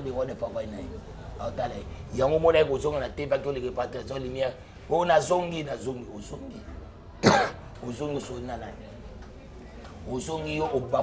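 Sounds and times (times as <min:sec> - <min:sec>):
man coughing loudly: 0:07.2 - 0:07.6.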